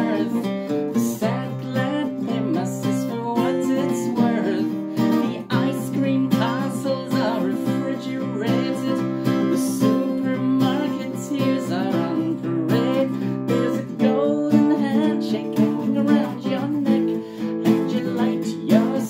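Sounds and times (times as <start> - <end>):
acoustic guitar strummed and picked: 0.0 - 19.0
man singing: 0.0 - 19.0.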